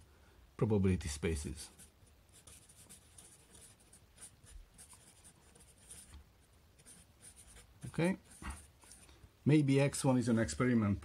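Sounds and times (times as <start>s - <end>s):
marker writing on board: 1.7s - 9.0s.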